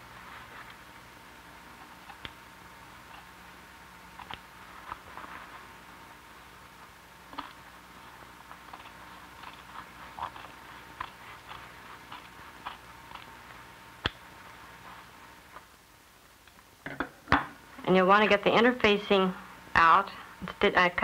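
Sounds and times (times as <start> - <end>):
steady low hum: 0.0 - 21.0
shears snipping fabric: 7.3 - 14.2.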